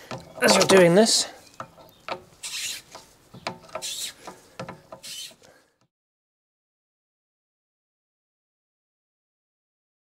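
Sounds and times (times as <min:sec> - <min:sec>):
short metal scrapes: 0:02.4 - 0:05.5.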